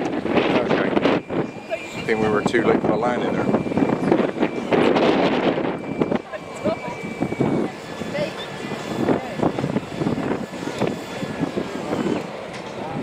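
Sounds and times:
indistinct voices talking: 0.0 - 13.0
outdoor background noise: 0.0 - 13.0.

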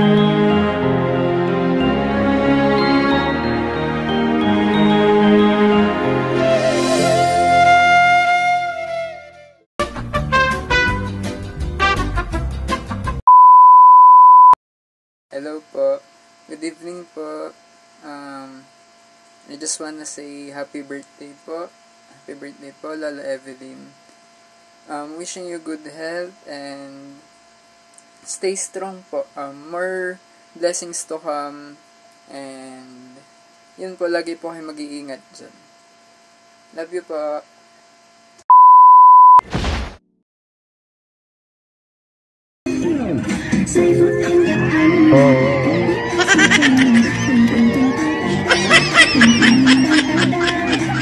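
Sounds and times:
swing brass band music: 9.8 - 13.0
steady test-card beep: 13.3 - 14.6, 38.5 - 39.4.

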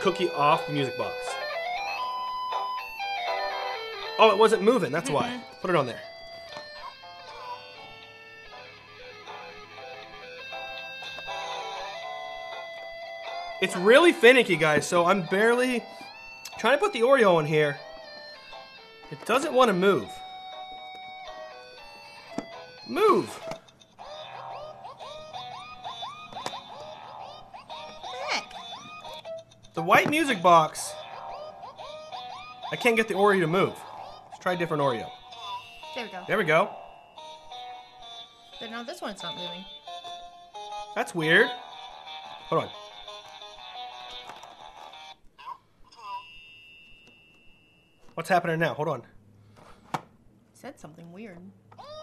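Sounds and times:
electronic melody from speaker: 0.0 - 44.3
faint steady high tone: 45.9 - 48.5.

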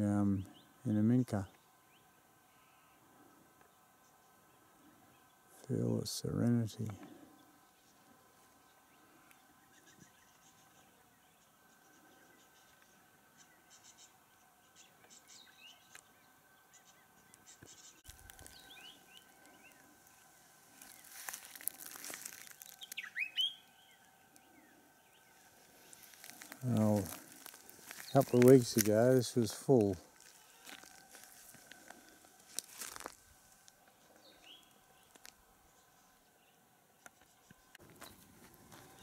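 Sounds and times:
bird chirps: 8.6 - 21.3, 22.4 - 27.1, 34.1 - 39.0.

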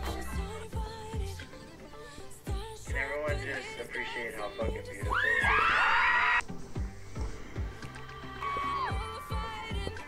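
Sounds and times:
fans screaming: 5.0 - 6.4.

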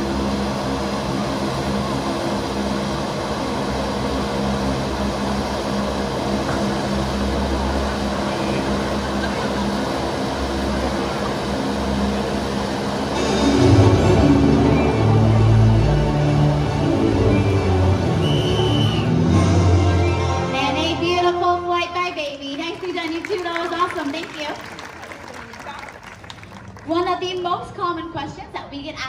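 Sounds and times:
wind machine blowing: 0.0 - 24.8
background music: 13.2 - 22.2.

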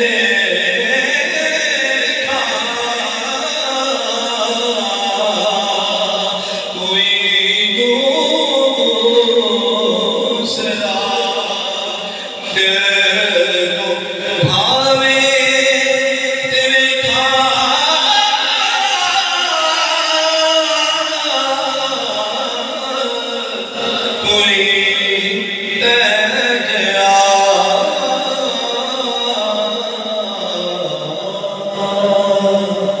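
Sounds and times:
man chanting into microphone: 0.0 - 33.0.

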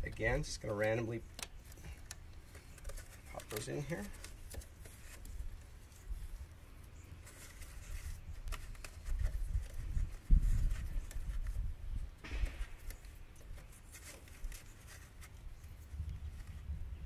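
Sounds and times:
small clicks and rustles: 0.0 - 16.8
loud thump: 12.2 - 13.0.

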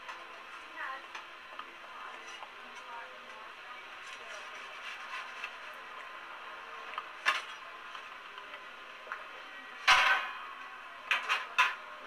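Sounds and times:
faint background talk: 0.0 - 12.0.

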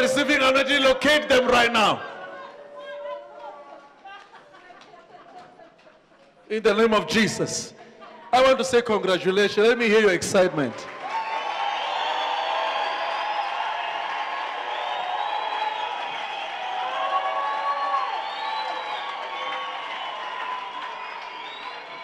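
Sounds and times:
crowd cheering and whooping: 1.5 - 4.2, 10.9 - 22.0.

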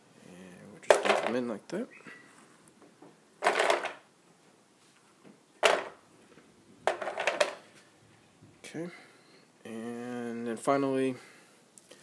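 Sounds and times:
filter media rattling in plastic basket: 3.4 - 4.0, 6.9 - 7.6.

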